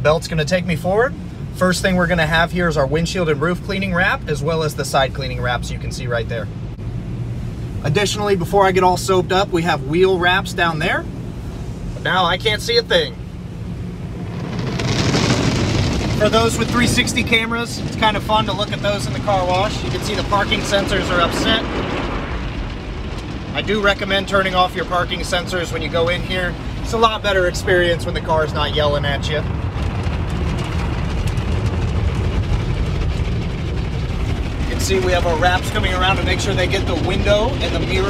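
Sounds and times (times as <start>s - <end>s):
car wash scrubbing and spraying: 0.0s - 38.0s
low steady rumble: 0.0s - 38.0s.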